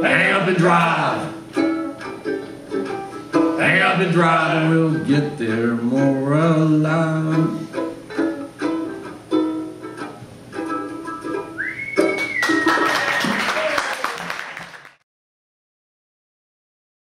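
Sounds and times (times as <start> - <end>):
banjo ukulele strumming chords: 0.0 - 12.2
high whistle: 11.5 - 13.6
applause: 12.1 - 15.0.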